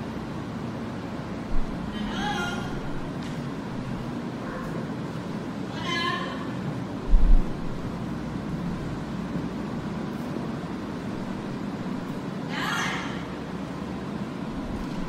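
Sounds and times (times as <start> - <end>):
room noise: 0.0 - 15.0
dull low thump: 7.1 - 7.9
parrot call over speakers: 12.5 - 13.3.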